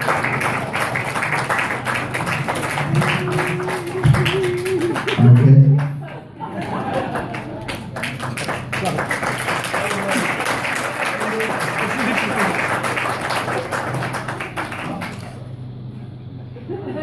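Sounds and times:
crowd applauding: 0:00.0 - 0:15.6.

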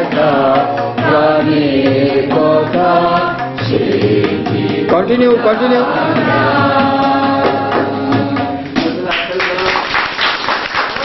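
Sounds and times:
voices singing: 0:00.0 - 0:09.3
tabla strokes: 0:00.0 - 0:09.4.

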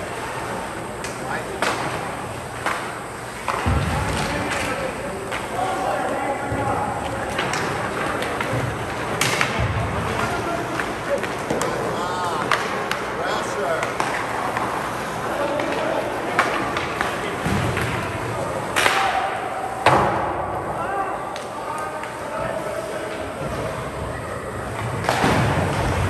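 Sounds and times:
hockey sticks and puck knocking: 0:01.0 - 0:02.0, 0:02.6 - 0:05.8, 0:06.5 - 0:20.3, 0:24.8 - 0:26.0.

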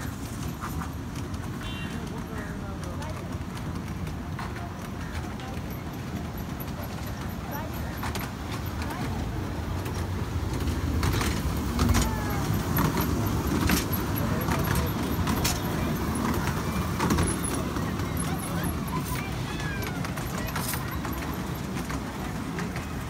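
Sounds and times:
small train rumbling on track: 0:00.0 - 0:23.0
train wheels clacking: 0:00.0 - 0:23.0.

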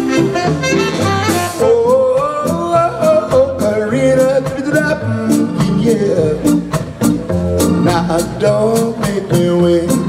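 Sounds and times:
soul band playing: 0:00.0 - 0:10.0.

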